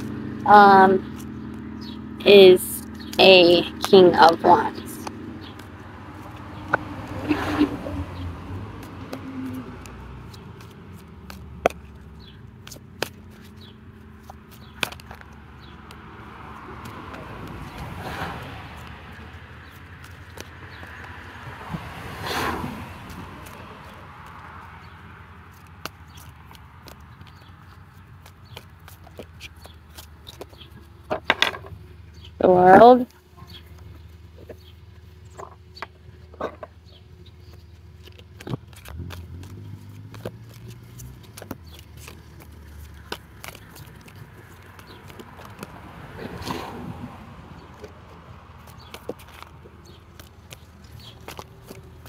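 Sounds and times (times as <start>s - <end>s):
low outdoor background noise: 0.0s - 52.0s
cards being shuffled: 8.8s - 16.0s, 37.5s - 46.4s.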